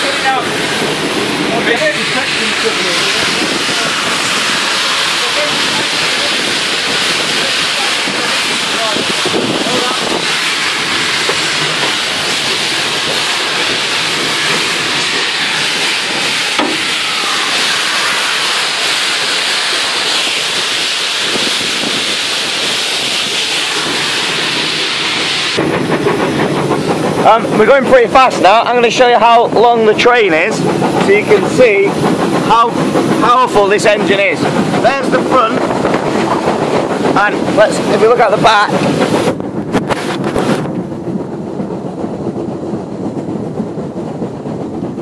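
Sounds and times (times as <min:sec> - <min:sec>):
steam locomotive hissing: 0:00.0 - 0:45.0.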